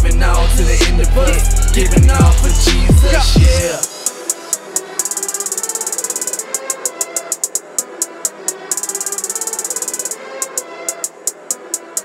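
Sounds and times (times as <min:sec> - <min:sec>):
hi-hat roll: 0:00.0 - 0:12.0.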